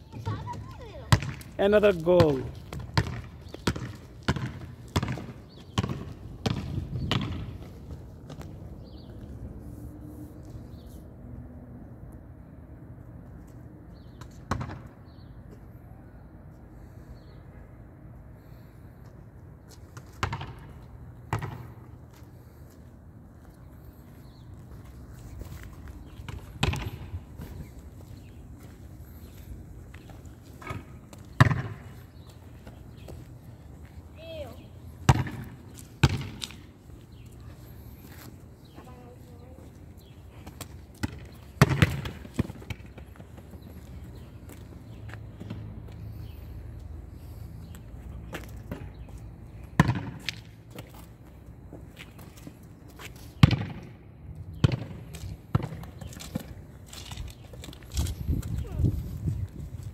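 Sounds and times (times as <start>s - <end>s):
basketball bouncing on asphalt: 0.0s - 9.2s, 14.0s - 15.7s, 19.7s - 22.8s, 24.6s - 46.9s, 47.6s - 59.9s.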